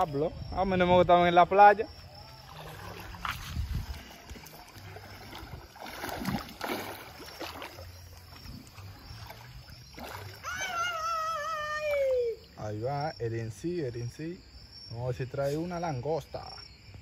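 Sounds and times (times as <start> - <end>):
swimmer splashing in water: 2.4 - 10.8.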